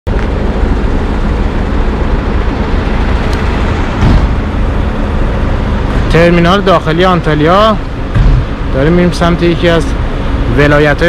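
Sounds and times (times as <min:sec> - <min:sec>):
vehicle engine idling: 0:00.1 - 0:11.0.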